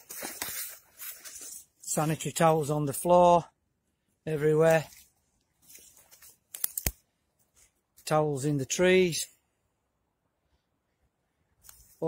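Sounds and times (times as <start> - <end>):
sharp clicks: 6.5 - 7.0.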